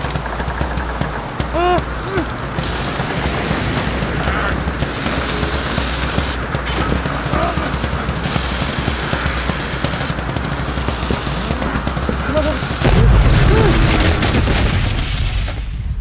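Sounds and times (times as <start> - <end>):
film music: 0.0 - 15.2
rumbling sound effects: 0.0 - 16.0
man muttering: 1.5 - 2.3
deep boom: 12.8 - 16.0.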